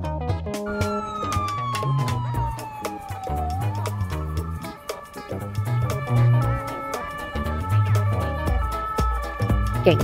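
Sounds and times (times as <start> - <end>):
background music: 0.0 - 10.0
police siren wailing: 0.7 - 10.0.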